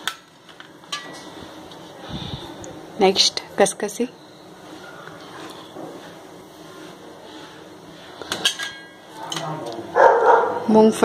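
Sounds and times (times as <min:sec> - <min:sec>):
steel bowls clinking on plate: 0:08.3 - 0:09.5.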